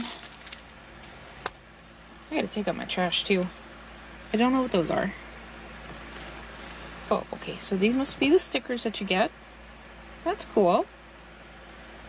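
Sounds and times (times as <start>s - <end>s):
cardboard and plastic bag rustling: 0.0s - 1.2s, 5.8s - 8.4s.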